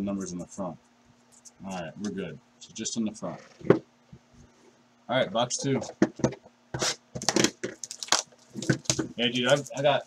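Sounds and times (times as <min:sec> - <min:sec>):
plastic shrink wrap tearing: 0:07.2 - 0:09.9.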